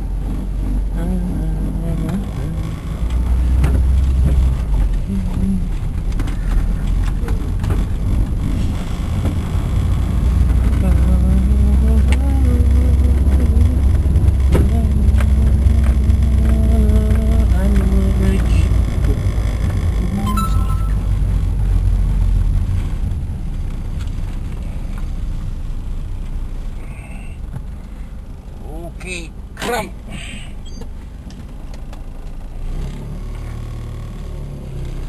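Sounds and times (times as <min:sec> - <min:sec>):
car engine and road rumble: 0:00.0 - 0:35.0
person humming a tune: 0:05.1 - 0:05.8.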